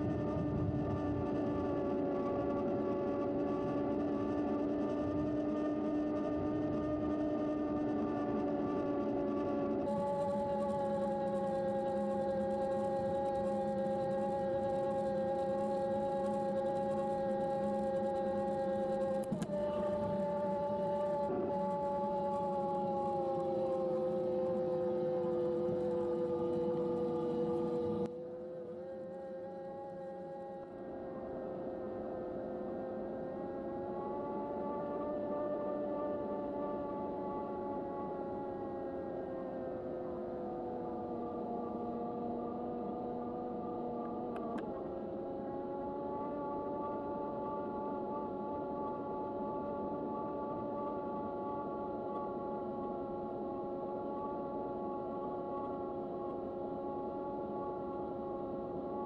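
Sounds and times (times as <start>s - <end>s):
electric bike motor whining: 0.0s - 31.3s.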